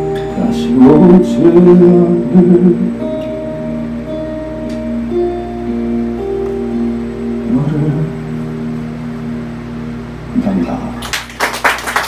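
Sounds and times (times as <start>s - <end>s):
acoustic guitar chords: 0.0s - 11.1s
audience applause: 11.0s - 12.0s.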